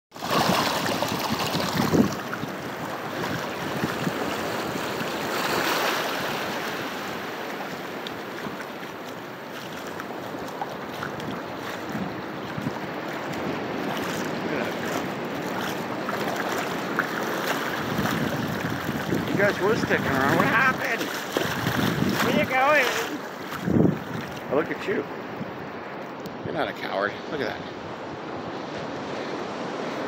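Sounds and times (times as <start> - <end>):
waves washing over sand: 0.1 - 30.0
wind on microphone: 0.2 - 8.6, 9.8 - 24.6.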